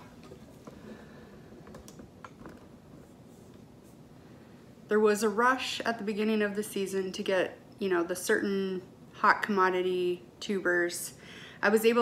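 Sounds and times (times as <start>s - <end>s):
soft rustles of dog being petted: 2.9s - 4.2s.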